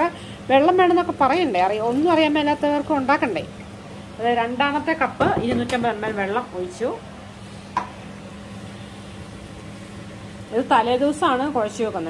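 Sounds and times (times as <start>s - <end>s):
steady low hum with hiss: 0.0s - 12.0s.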